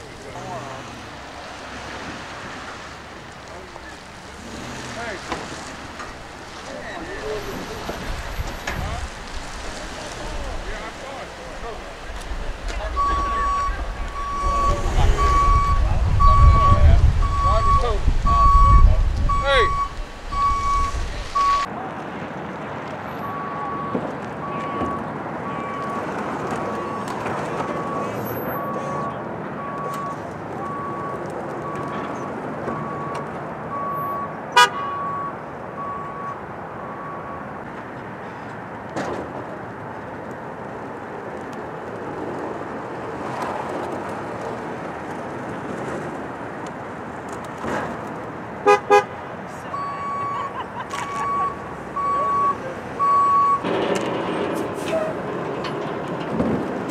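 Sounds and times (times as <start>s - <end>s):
wind rumble on microphone: 11.4s - 21.6s
truck reverse alarm beeping: 12.9s - 21.7s, 23.2s - 37.5s, 49.7s - 53.7s.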